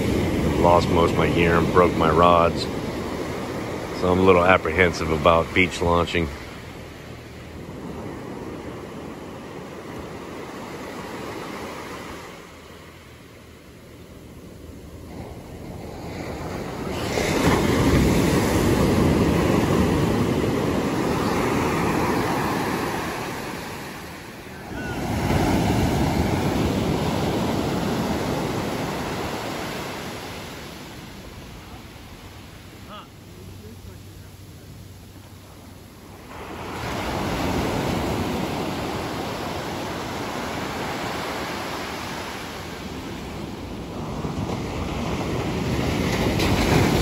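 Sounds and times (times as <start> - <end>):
ocean surf breaking on beach: 0.0 - 47.0.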